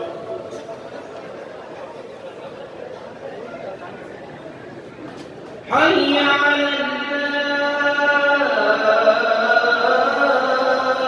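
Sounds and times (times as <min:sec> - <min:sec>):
man chanting call to prayer: 0:05.7 - 0:11.0.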